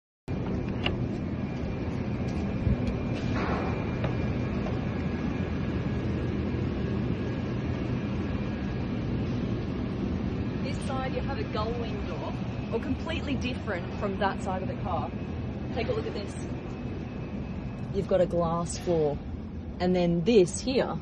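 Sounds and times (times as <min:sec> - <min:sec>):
faint steady tones: 0:00.3 - 0:21.0.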